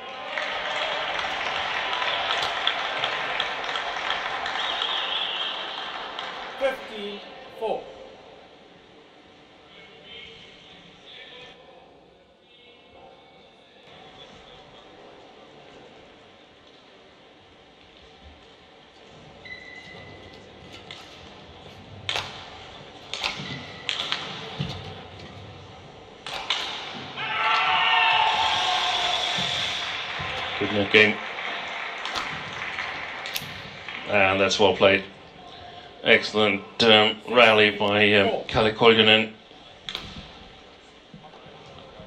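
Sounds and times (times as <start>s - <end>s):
murmur of the hall: 0.0s - 42.0s
shoes squeaking on court: 19.4s - 21.8s
racket striking shuttlecock: 22.0s - 24.9s, 26.2s - 27.7s, 32.0s - 33.8s.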